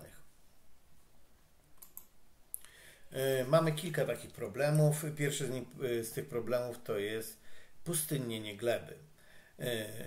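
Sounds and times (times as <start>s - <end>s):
computer clicks: 1.8s - 2.7s.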